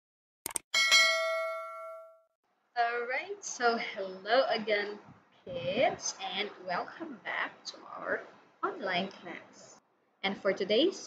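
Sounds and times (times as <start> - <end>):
notification bell chime: 0.8 - 2.2
woman speaking: 2.8 - 11.0.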